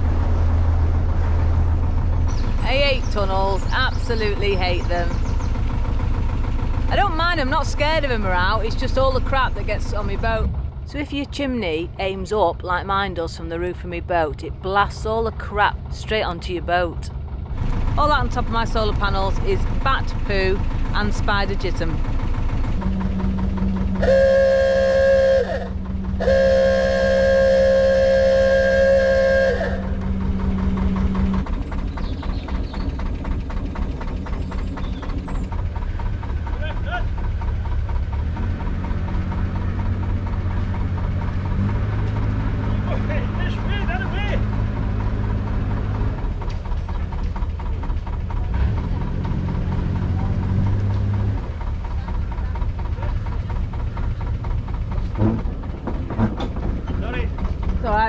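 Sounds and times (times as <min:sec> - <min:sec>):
boat diesel engine running: 0:00.0 - 0:58.0
boat horn blast: 0:22.8 - 0:31.4.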